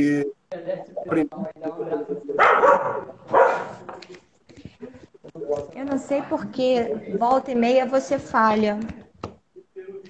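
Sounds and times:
voices on video call: 0.0 - 10.0.

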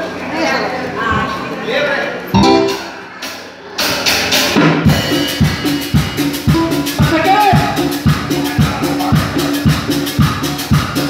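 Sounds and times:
bass notes: 2.4 - 3.2
drums and percussion: 2.4 - 11.0.

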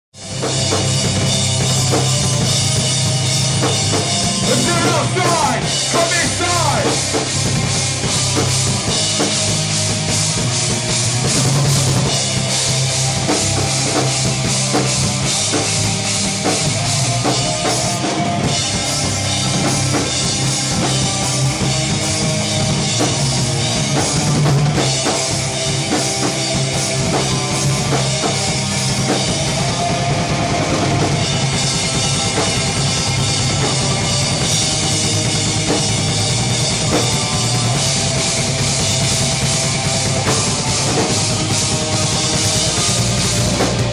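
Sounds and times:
metal band playing loud: 0.1 - 43.9.

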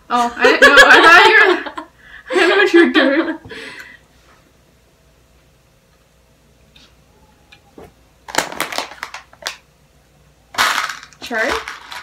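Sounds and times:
plastic packaging crinkling: 8.3 - 9.6.

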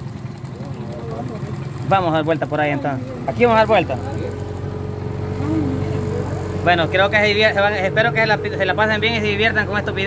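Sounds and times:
boat motor humming: 0.0 - 10.0.

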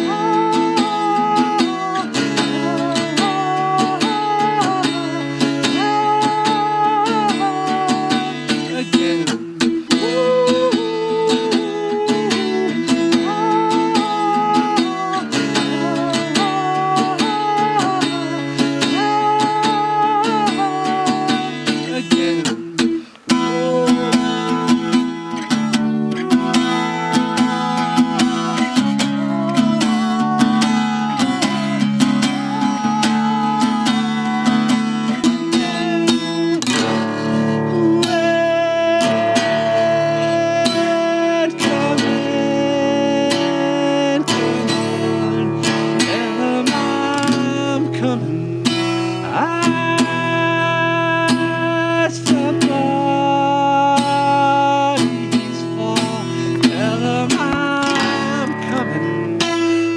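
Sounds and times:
acoustic guitar strumming: 0.0 - 59.9
man singing: 0.0 - 59.9.

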